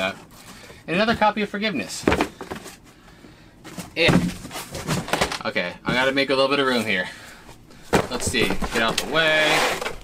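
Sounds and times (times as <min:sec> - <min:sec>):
faint rustling and shuffling: 0:00.0 - 0:10.0.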